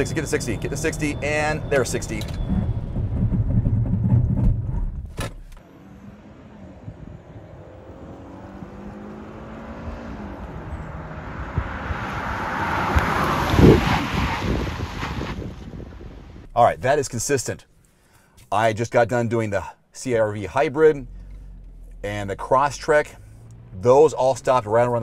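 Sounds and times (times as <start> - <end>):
car engine inside cabin: 0.0 - 13.5, 20.8 - 25.0
faint car engine passing: 5.6 - 17.1, 20.8 - 25.0.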